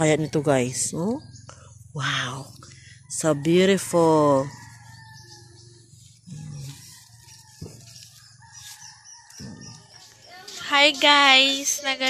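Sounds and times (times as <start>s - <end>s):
rooster crowing: 3.0s - 10.0s.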